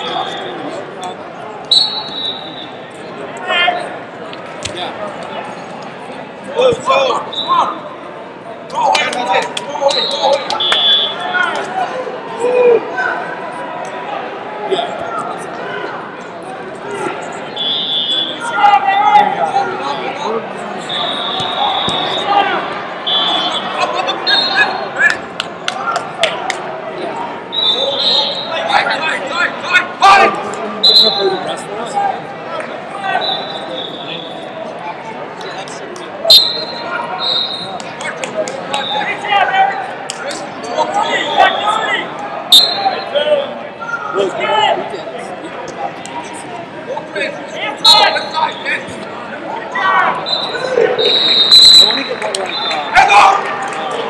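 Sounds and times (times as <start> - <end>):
people shouting and chattering: 0.0 - 54.0
referee whistle blasts: 1.7 - 2.8, 7.2 - 7.7, 9.8 - 11.4, 17.5 - 18.5, 20.8 - 22.4, 23.0 - 24.8, 27.5 - 28.7, 30.8 - 31.5, 33.2 - 34.6, 36.3 - 37.8, 42.5 - 43.2, 47.8 - 48.9, 50.1 - 53.0.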